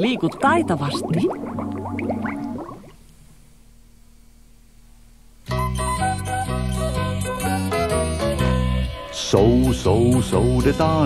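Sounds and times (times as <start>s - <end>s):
underwater bubble blips: 0.0s - 3.1s.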